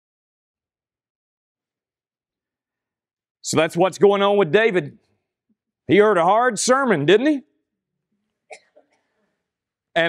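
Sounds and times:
man speaking: 0:03.4 - 0:05.1, 0:05.9 - 0:07.5.

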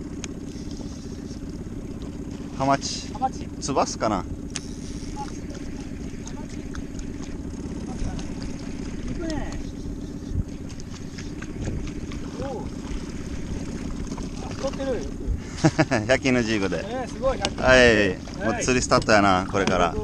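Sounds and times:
boat motor humming: 0:00.0 - 0:20.0
people laughing: 0:15.4 - 0:16.2.

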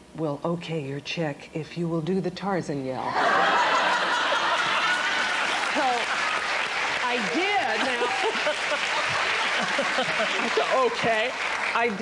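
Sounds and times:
audience applauding and laughing: 0:03.1 - 0:12.0.

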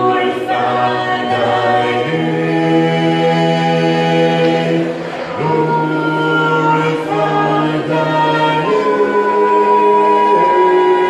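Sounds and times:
group singing a cappella: 0:00.0 - 0:11.0.

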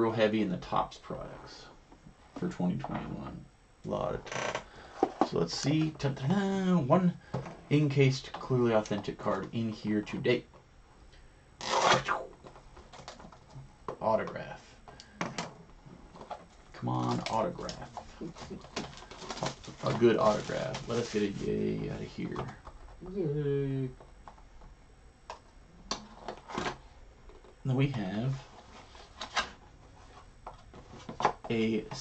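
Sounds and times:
cardboard flap scraping rustle: 0:18.2 - 0:21.5.

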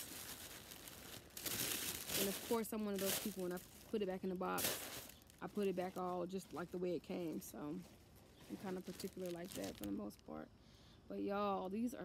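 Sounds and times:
tissue paper rustling: 0:00.0 - 0:09.9.

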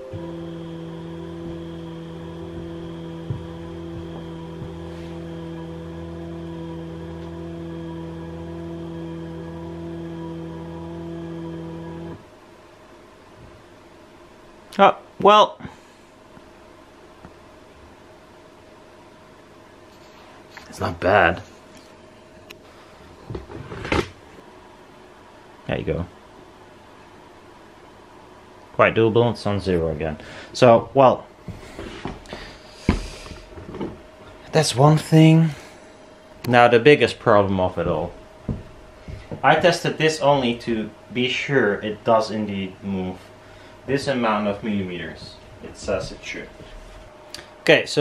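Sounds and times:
stepper motor whine: 0:00.0 - 0:12.3
irregular knocks and clatter: 0:37.8 - 0:39.4.

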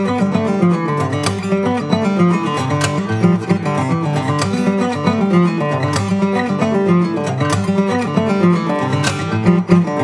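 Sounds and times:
fingerstyle acoustic guitar: 0:00.0 - 0:10.0
percussive guitar accent: 0:00.0 - 0:10.0.

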